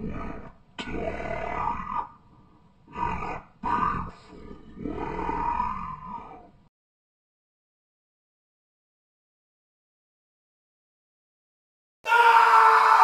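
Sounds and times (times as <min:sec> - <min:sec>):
monster roaring: 0:00.0 - 0:02.2, 0:02.9 - 0:06.5.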